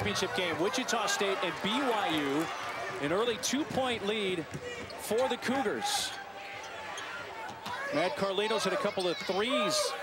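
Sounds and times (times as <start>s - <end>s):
arena crowd murmur: 0.0s - 10.0s.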